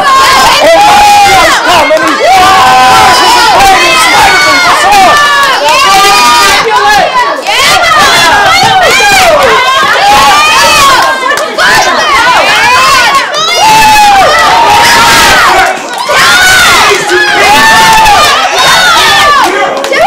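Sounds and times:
young voices shouting battle cries: 0:00.0 - 0:20.0.

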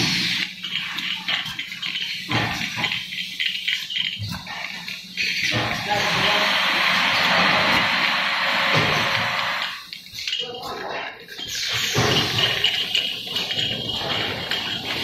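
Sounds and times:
bottling machinery rushing hiss: 0:00.0 - 0:10.4, 0:11.3 - 0:15.0
people talking: 0:05.4 - 0:07.8, 0:10.3 - 0:11.2.

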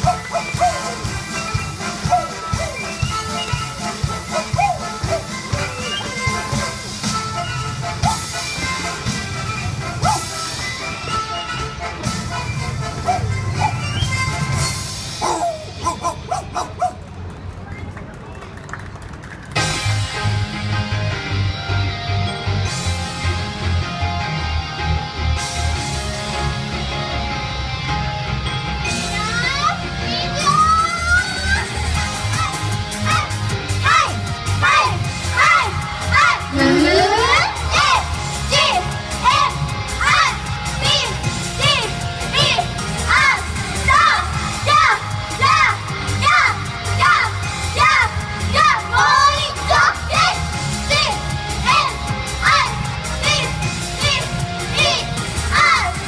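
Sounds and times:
faint clapping: 0:17.0 - 0:19.6
people shouting calls: 0:33.1 - 0:38.7
high-pitched voices shouting calls: 0:36.2 - 0:38.1.

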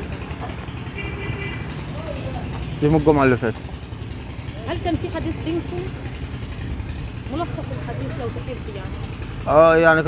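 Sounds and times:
distant traffic rumble: 0:00.0 - 0:10.0.

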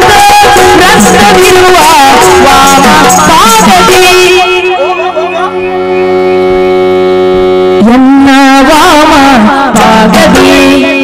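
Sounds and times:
person singing: 0:00.0 - 0:06.5, 0:07.8 - 0:11.0
reedy drone: 0:03.8 - 0:08.8.

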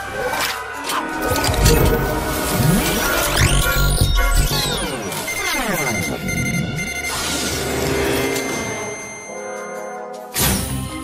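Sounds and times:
dramatic background music: 0:00.0 - 0:11.0
electronic tones sliding down: 0:01.2 - 0:09.4
short high beeps: 0:03.3 - 0:10.1.

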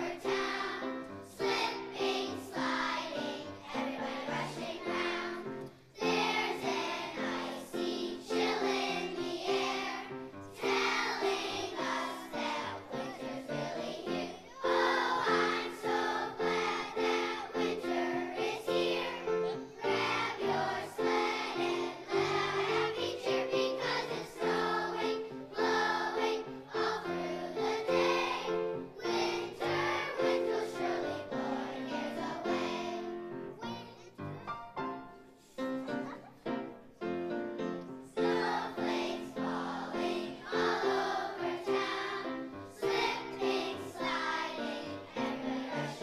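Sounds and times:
children's choir singing: 0:00.0 - 0:46.0.

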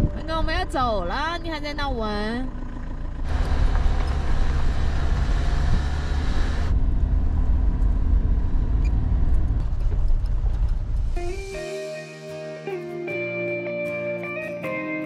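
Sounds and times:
engine and tyre rumble on gravel: 0:00.0 - 0:11.2
music: 0:11.0 - 0:15.0.

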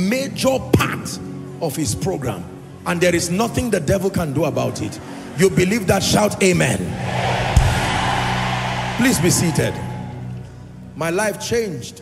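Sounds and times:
congregation shouting and cheering: 0:06.8 - 0:10.6.

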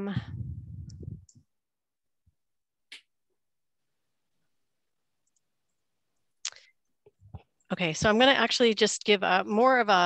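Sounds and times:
woman saying um: 0:00.0 - 0:01.3.

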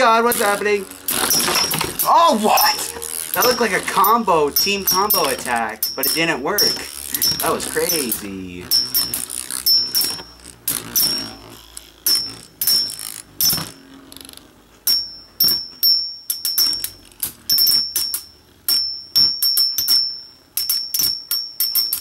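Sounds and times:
spinning tops clashing: 0:00.3 - 0:11.4
high metallic ringing: 0:01.0 - 0:13.6, 0:14.8 - 0:16.9, 0:17.5 - 0:22.0.

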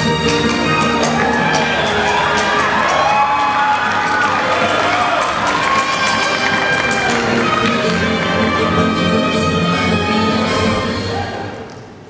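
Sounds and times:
audience cheering and clapping: 0:00.0 - 0:11.4
instrumental music: 0:00.0 - 0:11.6.

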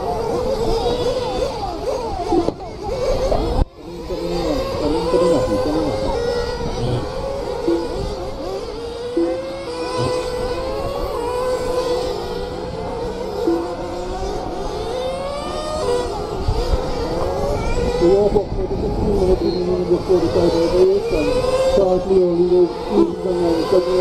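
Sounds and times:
rc car motors whining: 0:00.0 - 0:24.0.

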